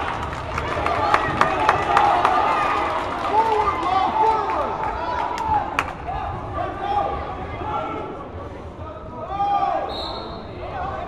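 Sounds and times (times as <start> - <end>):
referee's whistle: 9.8 - 10.5.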